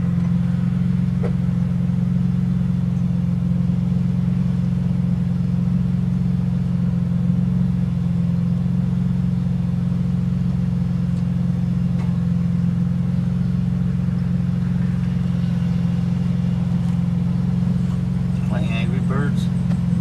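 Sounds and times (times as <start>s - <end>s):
car engine idling drone: 0.0s - 20.0s.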